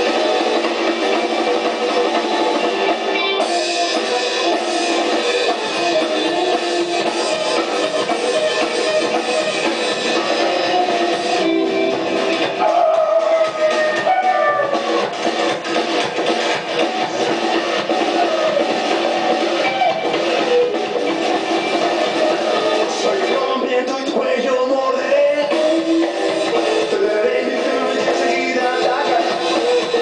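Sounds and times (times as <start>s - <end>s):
electric guitar: 0.0s - 24.4s, 25.0s - 30.0s
drum kit: 0.0s - 30.0s.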